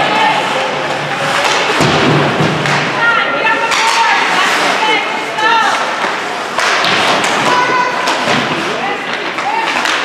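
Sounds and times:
hockey sticks and puck clacking: 0.0 - 10.0.

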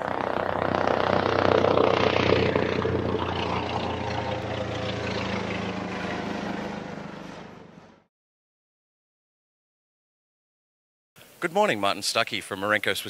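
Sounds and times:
helicopter turbine and rotor noise: 0.0 - 8.1.

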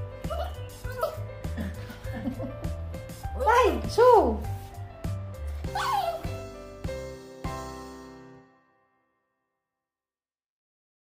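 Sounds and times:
background music with steady beat: 0.0 - 8.4
small dog yipping: 5.7 - 6.3.

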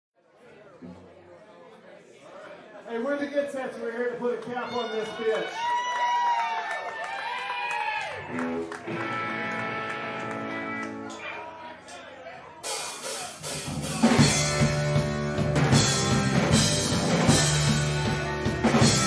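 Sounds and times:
rock band playing: 8.2 - 11.2, 12.6 - 19.0
drums crashing: 12.6 - 19.0.

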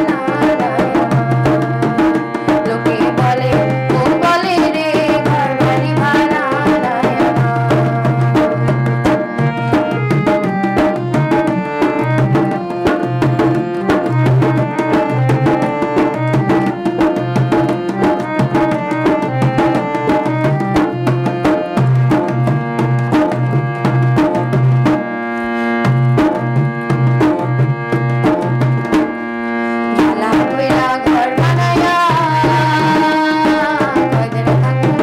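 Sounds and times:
hand-played barrel drum: 0.0 - 25.2, 25.8 - 29.2, 29.9 - 35.0
harmonium melody: 0.0 - 35.0.

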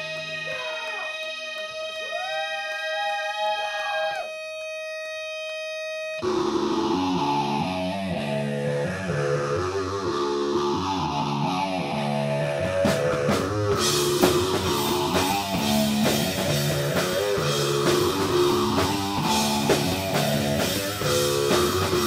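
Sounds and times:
rock band playing: 0.0 - 2.8, 4.5 - 22.0
distorted electric guitar: 0.0 - 22.0
sliding effects guitar tones: 0.0 - 22.0.

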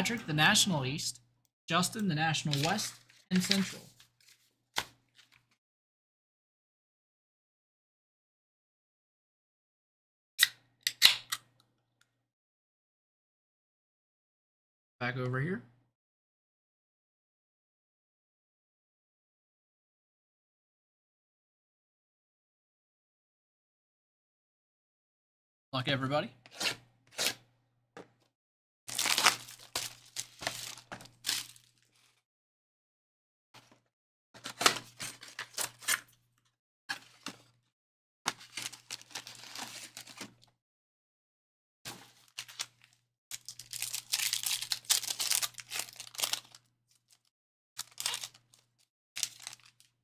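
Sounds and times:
plastic wrap crinkling and tearing: 28.9 - 31.9, 38.4 - 40.4, 42.2 - 47.2, 47.8 - 50.0.

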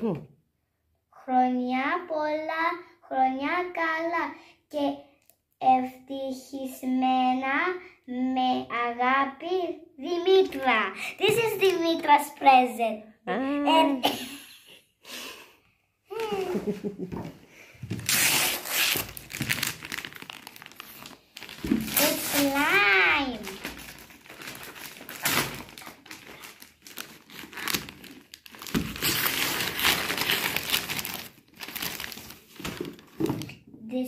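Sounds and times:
wrapping paper crinkling and tearing: 18.0 - 33.6.

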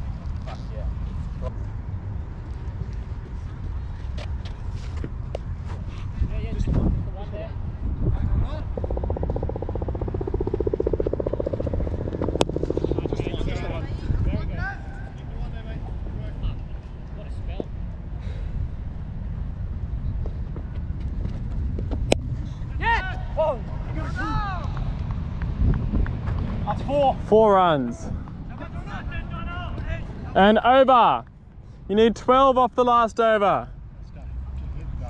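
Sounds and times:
wind rumble on microphone: 0.0 - 27.4
distant shouts: 22.7 - 25.0.

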